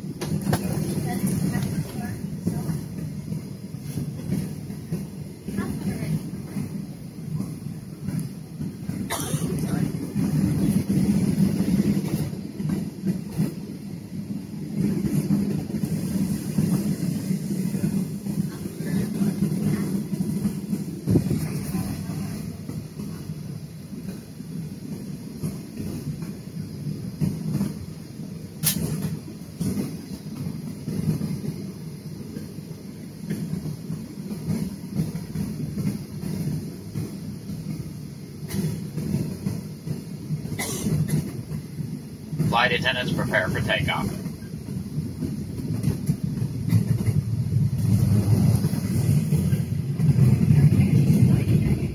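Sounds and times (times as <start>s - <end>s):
airliner cabin rumble: 0.0s - 51.9s.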